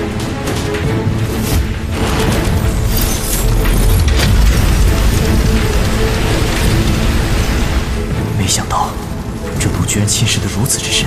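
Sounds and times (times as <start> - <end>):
background music: 0.0 - 11.0
metal chains rattling: 2.4 - 5.9.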